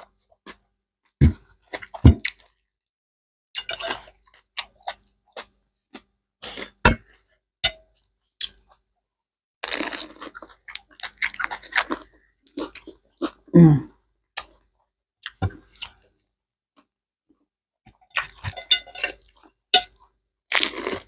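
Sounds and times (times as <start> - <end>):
egg rolls crunching when chewed: 9.6 - 13.5, 14.4 - 16.9, 18.0 - 21.0.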